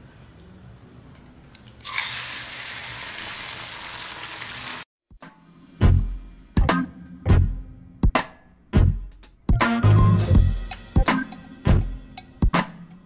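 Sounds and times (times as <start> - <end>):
egg sizzling in a frying pan: 1.8 - 4.9
music with a drum beat: 5.1 - 13.0.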